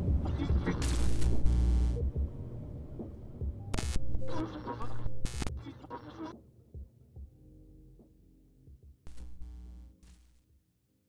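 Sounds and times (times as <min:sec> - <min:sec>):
low throbbing hum: 0:00.0 - 0:05.5, 0:09.1 - 0:10.1
glitchy static bursts: 0:00.6 - 0:02.0, 0:03.8 - 0:05.5, 0:09.1 - 0:10.3.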